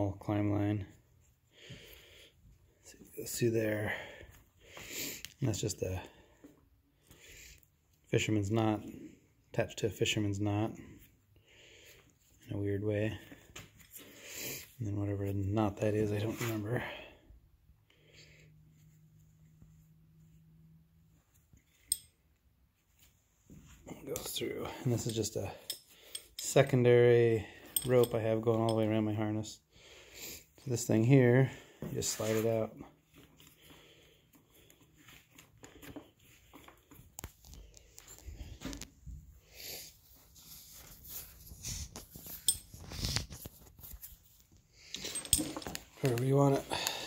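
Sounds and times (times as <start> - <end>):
metal hardware clinking: 21.7 - 22.2, 24.1 - 26.8, 27.5 - 29.0, 42.2 - 43.0, 44.9 - 47.0
climbing rope rustling and knocking: 31.8 - 39.4, 40.1 - 47.0.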